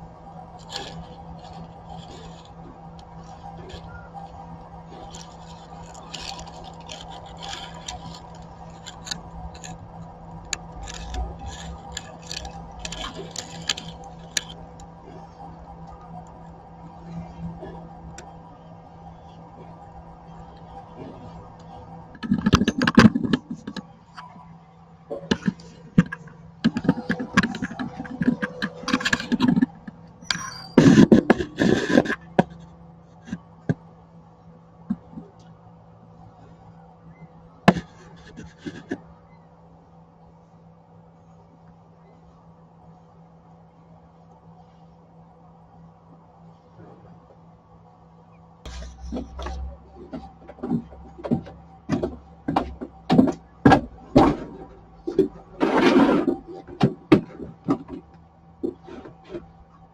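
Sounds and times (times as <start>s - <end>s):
steady electrical hum: 0.0s - 59.9s
camera rubbing on dry grass: 0.4s - 14.7s, 30.8s - 33.4s.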